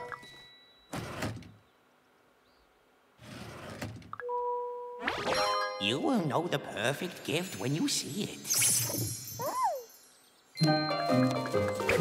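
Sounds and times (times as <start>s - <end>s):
door sliding rush: 0.9s - 1.6s, 3.2s - 4.1s.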